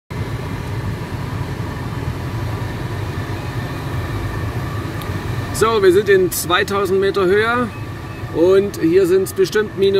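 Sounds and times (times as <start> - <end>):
air rushing in cockpit: 0.1 - 9.9.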